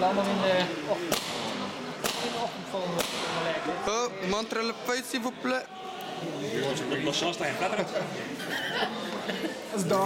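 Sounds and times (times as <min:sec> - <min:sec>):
background chatter: 0:00.0 - 0:10.0
paintball marker shots: 0:01.1 - 0:02.4, 0:03.0 - 0:03.4.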